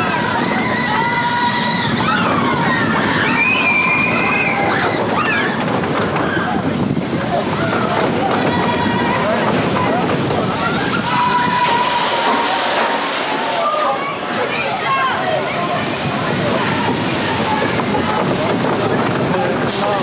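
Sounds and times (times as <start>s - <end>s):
roller coaster rattling on track: 0.0s - 20.0s
riders' voices: 4.7s - 20.0s.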